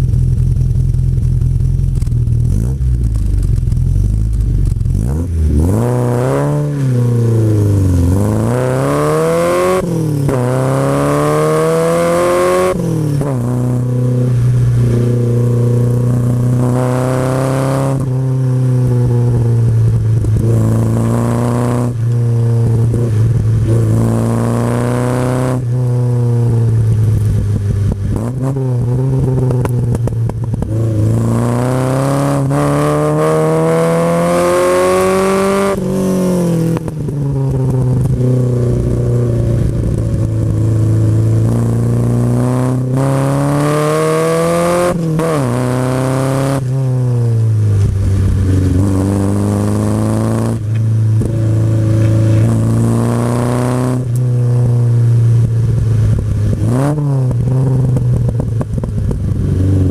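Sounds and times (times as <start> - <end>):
sports car engine revving: 0.0 - 59.9.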